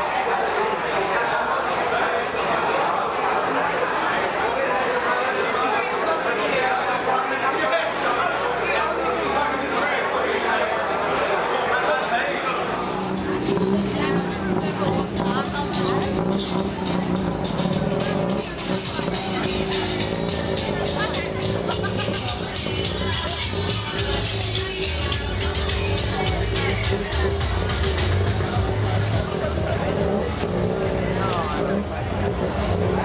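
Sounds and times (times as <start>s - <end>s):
people talking: 0.0s - 33.0s
people's voices: 0.0s - 33.0s
vehicle engine running: 12.5s - 33.0s
music from bars: 12.8s - 33.0s.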